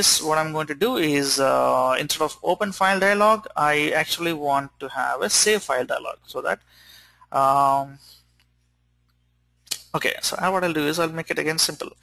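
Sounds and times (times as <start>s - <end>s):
sharp click: 9.6s - 9.9s.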